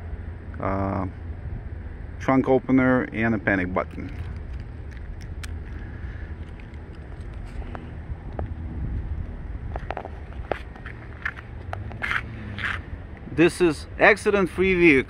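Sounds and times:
low outdoor rumble: 0.0 - 15.0
camera handling clicks and scrapes: 3.9 - 8.5, 9.8 - 12.8
footsteps on pavement: 4.1 - 13.2.

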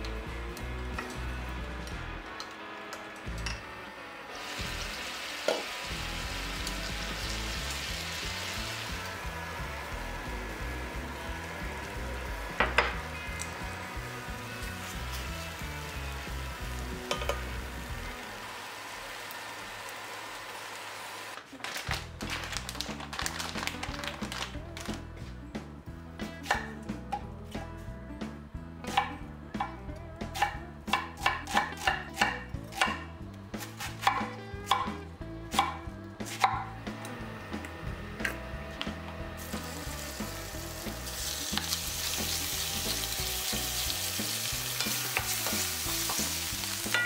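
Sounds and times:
mushrooms sizzling in a frying pan: 4.4 - 21.3, 39.4 - 47.0.

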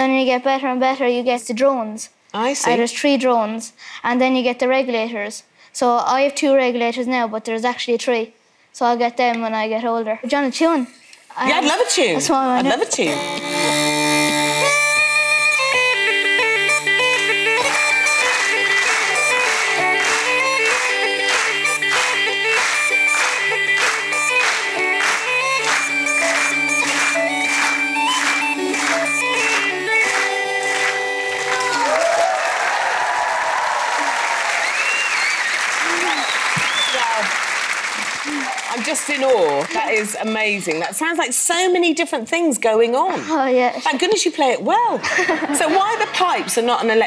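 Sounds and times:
uilleann pipes playing lively tune: 11.6 - 32.6
audience applause and cheers: 16.7 - 40.5.

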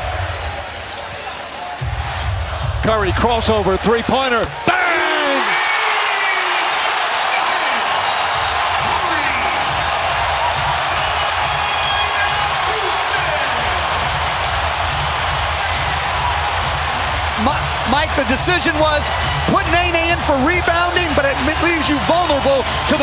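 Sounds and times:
crowd roaring and whooping: 4.6 - 23.0.

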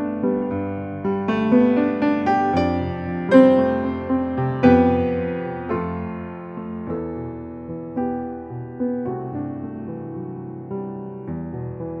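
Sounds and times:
slow solo piano chords: 0.0 - 12.0.

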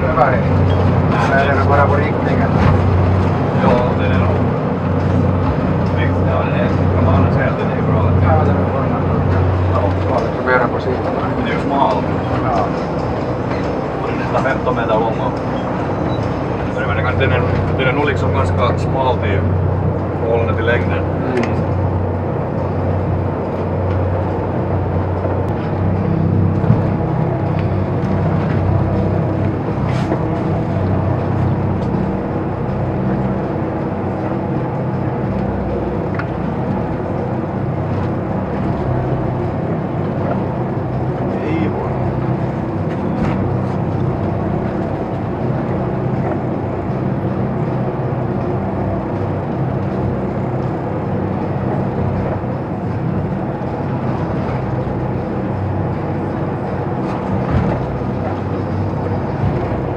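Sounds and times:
boat diesel engines droning: 0.0 - 59.9.

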